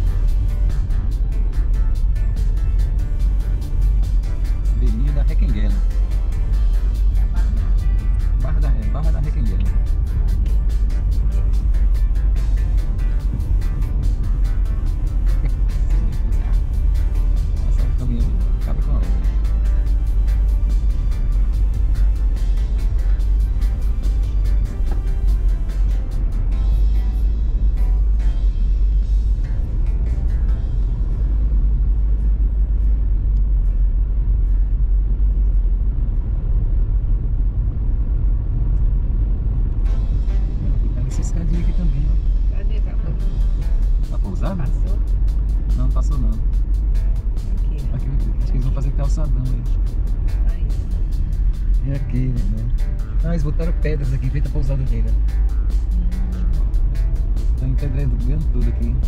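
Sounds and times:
car driving rumble: 0.0 - 59.0
music playing: 0.0 - 59.0.

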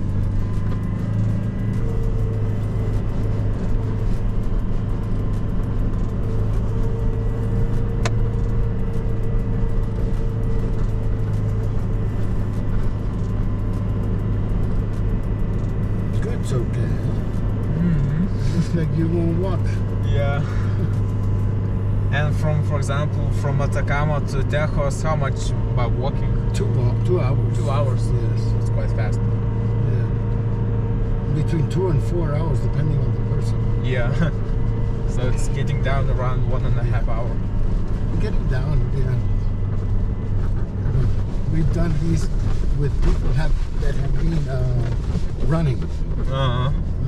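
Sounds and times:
car engine under load: 0.0 - 47.0.

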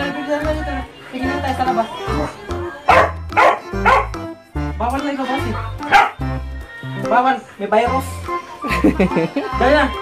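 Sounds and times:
background music with bass line: 0.0 - 10.0
dog barking: 2.9 - 4.2, 5.9 - 6.2.

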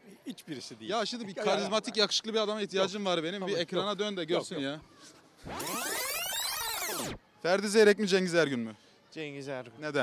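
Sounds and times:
electronic sweep sound effect: 5.4 - 7.2.

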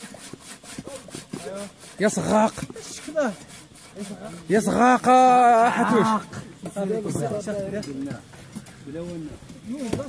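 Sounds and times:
saws rasping through wood: 0.0 - 7.6, 9.0 - 10.0.

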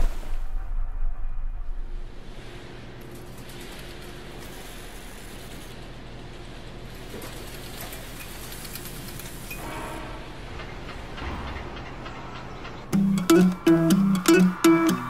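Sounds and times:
low rumble: 0.0 - 3.0
faint rhythmic clatter: 10.6 - 15.0.

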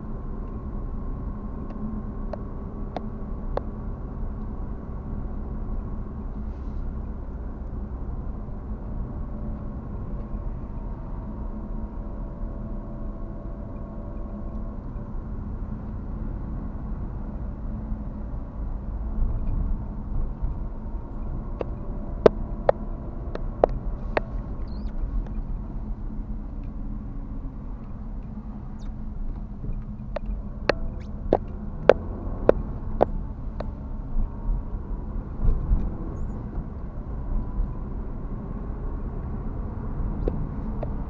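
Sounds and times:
car road and engine rumble: 0.0 - 41.0.

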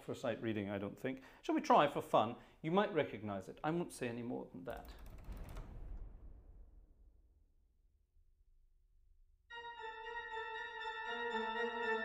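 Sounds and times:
pipe organ chord: 9.5 - 12.0.

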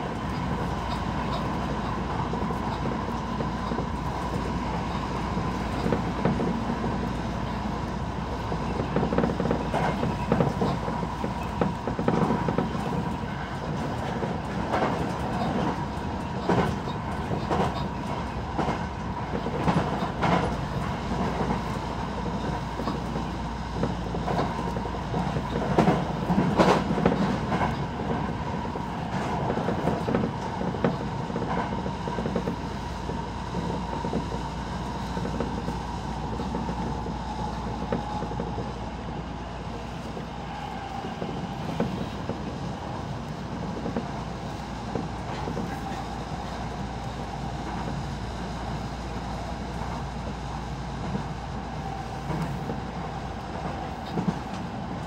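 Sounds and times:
train running hum: 0.0 - 55.0
train wheels clicking over rail joints: 0.0 - 55.0.

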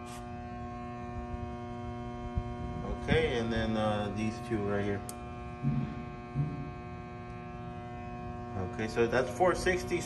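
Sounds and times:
transformer humming: 0.0 - 10.0.

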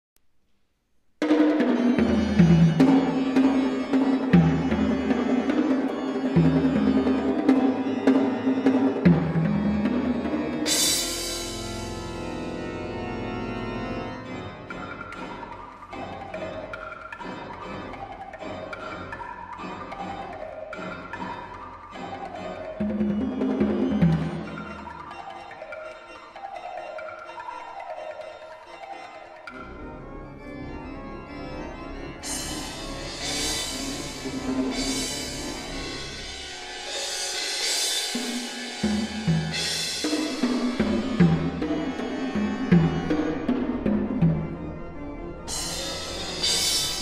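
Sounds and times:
percussion crash: 1.2 - 12.7, 32.2 - 44.6, 45.5 - 47.0
pipe organ playing: 1.4 - 47.0.

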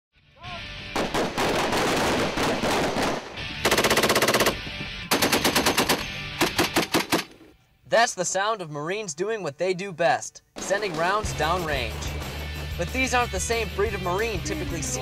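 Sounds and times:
automatic machine-gun fire: 1.0 - 7.3.

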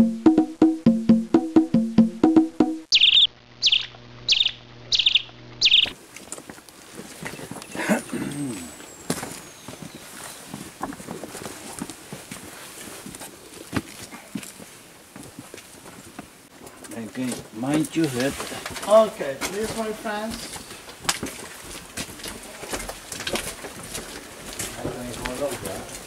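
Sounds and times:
wood-block percussion music: 0.0 - 2.9
small songbird chirping: 2.9 - 6.0, 8.5 - 10.6.

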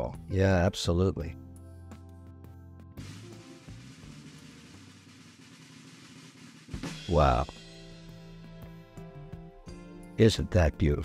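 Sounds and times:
snare drum roll: 3.0 - 8.1.

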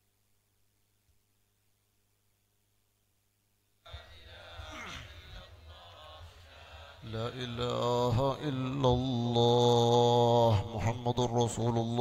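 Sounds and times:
man chanting: 3.9 - 12.0.

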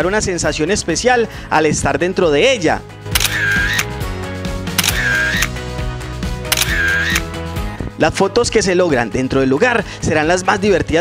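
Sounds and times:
background music: 0.0 - 11.0
camera shutter sound effect: 3.1 - 3.9, 4.8 - 5.6, 6.5 - 7.3.

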